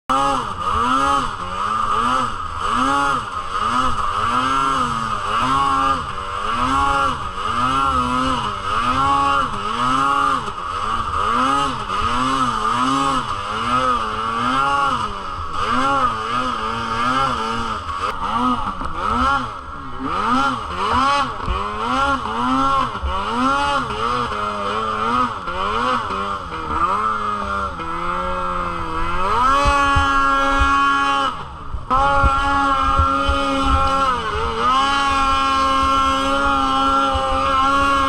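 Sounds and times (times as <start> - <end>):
snowmobile engine revving: 0.0 - 38.0.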